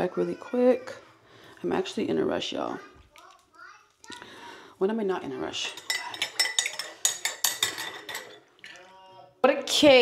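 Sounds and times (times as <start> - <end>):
small containers clinking together: 5.4 - 9.0.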